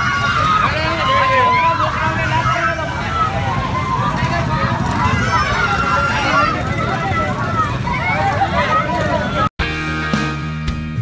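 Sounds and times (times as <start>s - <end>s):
crowd shouting: 0.0s - 9.5s.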